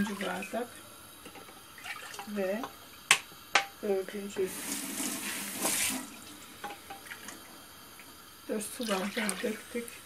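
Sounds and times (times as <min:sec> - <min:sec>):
faint drips and ticks: 0:06.6 - 0:10.0.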